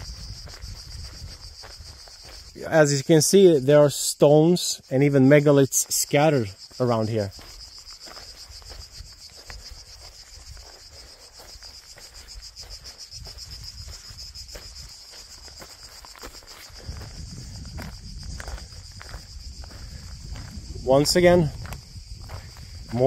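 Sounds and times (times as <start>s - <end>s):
insects chirring: 0.0s - 23.0s.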